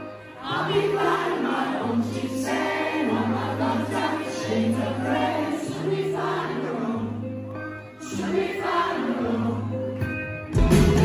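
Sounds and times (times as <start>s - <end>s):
rock band playing live with singing: 0.0s - 11.0s.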